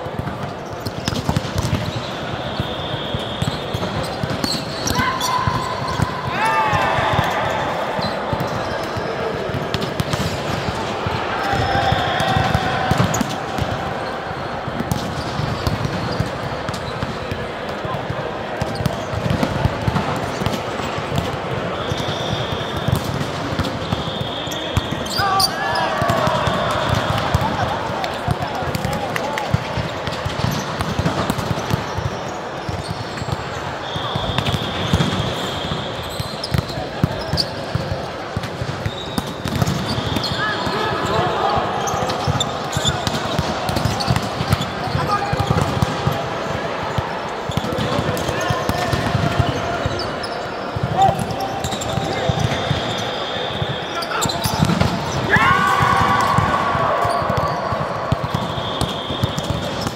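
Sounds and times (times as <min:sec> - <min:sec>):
players calling out: 0:01.9 - 0:29.9, 0:38.9 - 0:59.9.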